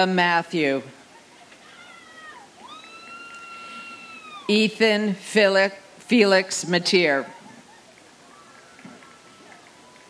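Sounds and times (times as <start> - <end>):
high-pitched cheer from audience: 1.6 - 4.5.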